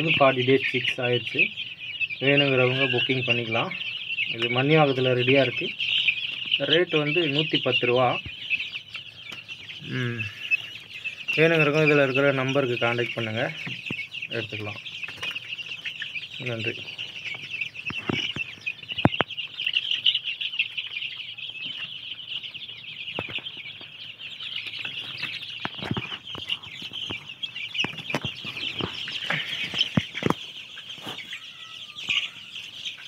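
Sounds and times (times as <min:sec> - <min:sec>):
chicks peeping: 0:00.0 - 0:33.0.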